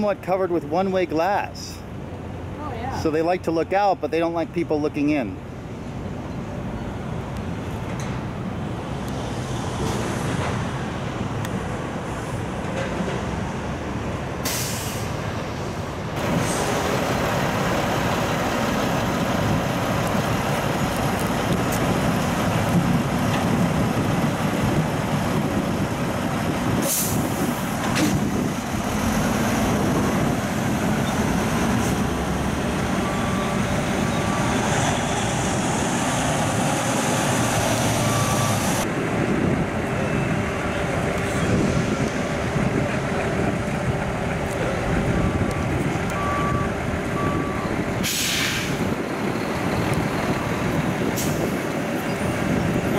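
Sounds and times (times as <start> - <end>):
truck engine noise: 0.0 - 52.9
air brake hisses: 14.4 - 15.2, 48.0 - 48.8.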